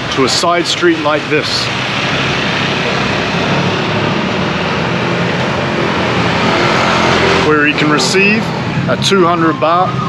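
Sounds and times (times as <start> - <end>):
motorbike and car engines: 0.0 - 10.0.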